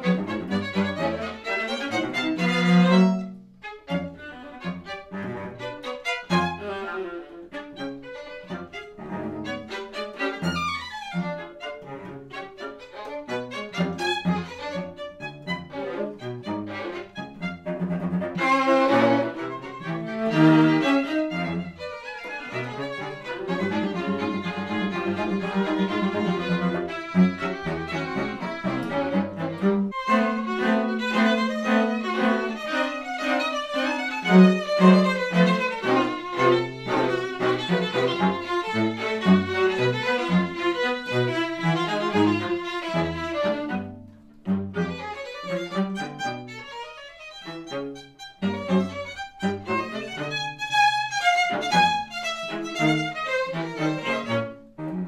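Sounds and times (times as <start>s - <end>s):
string quartet playing: 0.0s - 55.0s.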